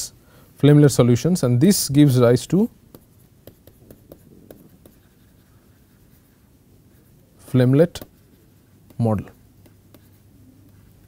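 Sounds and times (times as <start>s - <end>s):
stylus tapping and scratching: 2.5s - 11.0s.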